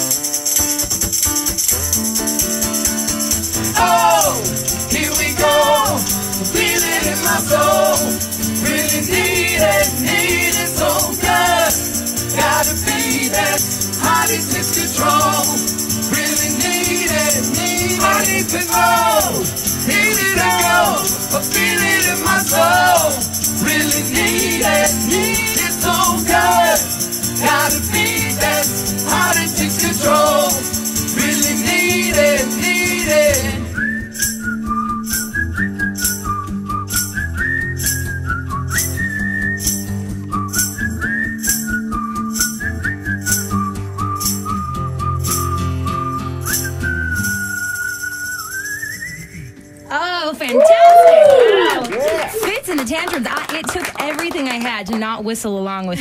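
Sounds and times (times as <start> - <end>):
strummed acoustic guitar: 0.0 - 33.8, 41.8 - 47.3
shaker: 0.0 - 34.4
whistled melody: 0.1 - 49.9
man and woman singing: 3.7 - 33.8.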